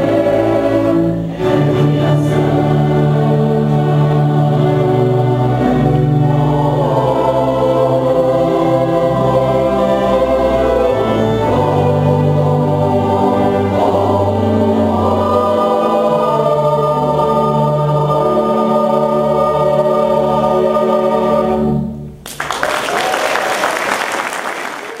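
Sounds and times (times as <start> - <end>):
choir and strings holding a chord: 0.0 - 22.2
audience applause: 22.2 - 25.0.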